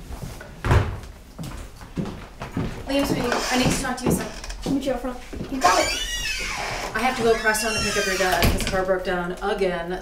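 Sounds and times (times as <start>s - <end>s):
footsteps on hardwood floor: 0.0s - 8.4s.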